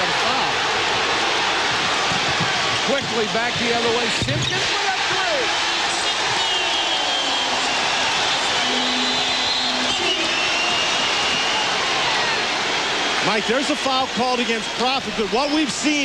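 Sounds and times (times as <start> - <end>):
arena crowd noise: 0.0 - 16.0
basketballs bouncing on hardwood: 2.0 - 4.6.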